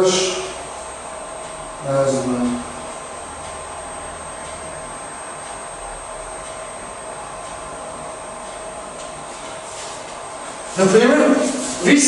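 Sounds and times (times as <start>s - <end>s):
whirring fan: 0.0s - 12.0s.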